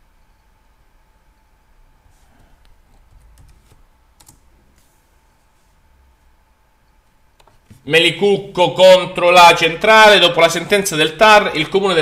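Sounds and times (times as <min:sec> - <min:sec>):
faint electrical whine: 0:00.0 - 0:12.0
computer mouse clicks: 0:02.6 - 0:04.9.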